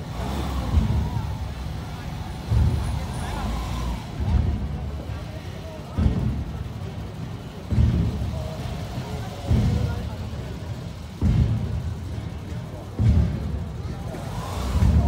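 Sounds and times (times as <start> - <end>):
crowd voices: 0.0 - 15.0
low vehicle rumble: 0.0 - 15.0
marching drums booming: 0.0 - 15.0.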